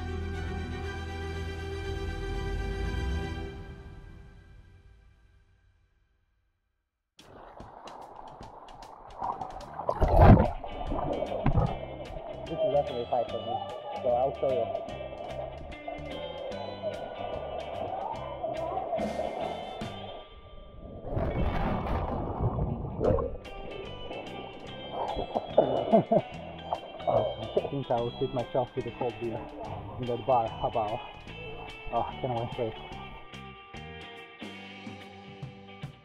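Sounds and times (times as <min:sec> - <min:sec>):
background music: 0:00.0 - 0:05.4, 0:07.7 - 0:21.7, 0:22.3 - 0:36.0
sea water sloshing and splashing: 0:07.2 - 0:33.4.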